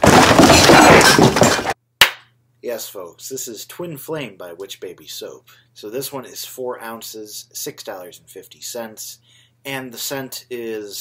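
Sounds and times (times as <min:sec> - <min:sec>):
harsh crashing noise: 0:00.0 - 0:01.8.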